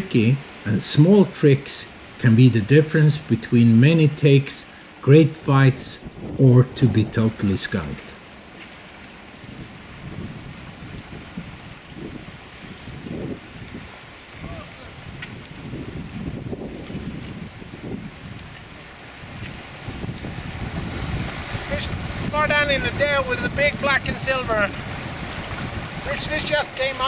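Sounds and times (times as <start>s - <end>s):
river water rushing: 0.0s - 27.0s
wind buffeting microphone: 5.3s - 27.0s.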